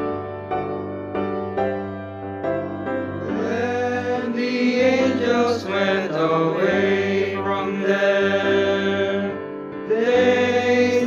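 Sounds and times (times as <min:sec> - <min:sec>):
choir singing in harmony: 0:03.2 - 0:11.0.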